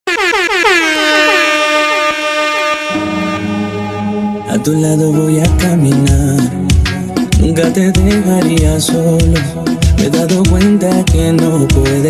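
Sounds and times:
air horn blasts: 0.0 - 4.3.

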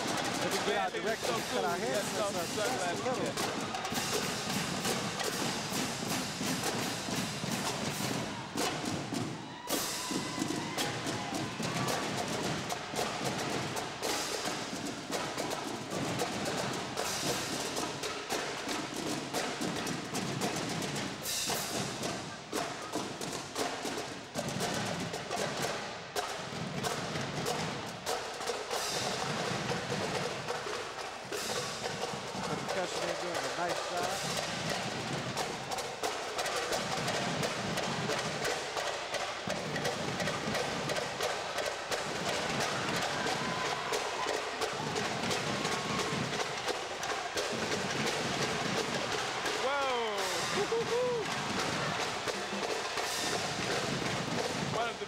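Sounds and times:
snare and tenor drums: 0.0 - 55.0.

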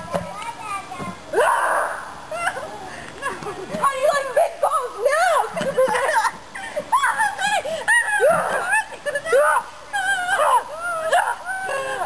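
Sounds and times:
children squealing: 1.3 - 2.7.

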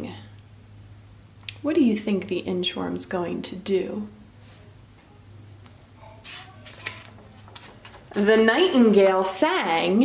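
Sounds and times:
faint steady hum: 0.0 - 10.0
paper page rustling: 6.2 - 8.4.

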